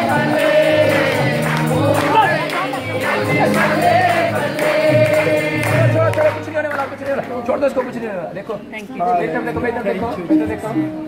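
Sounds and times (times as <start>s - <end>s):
group singing gospel song: 0.0s - 6.4s
instrumental backing: 0.0s - 11.0s.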